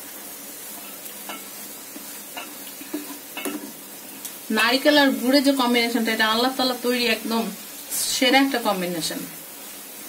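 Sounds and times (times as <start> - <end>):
pan sizzling: 0.0 - 10.0.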